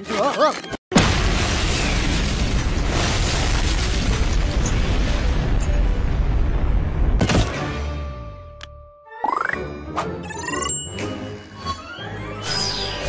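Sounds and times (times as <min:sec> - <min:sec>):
cartoon explosion rumble: 0:00.9 - 0:07.4.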